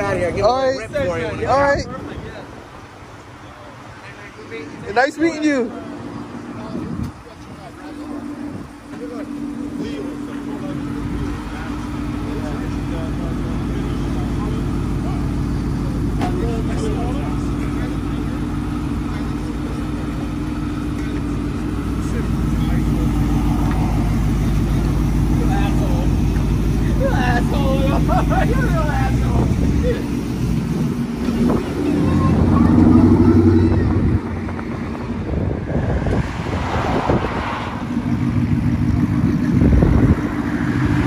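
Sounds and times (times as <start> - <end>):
truck engine idling: 0.0 - 41.0.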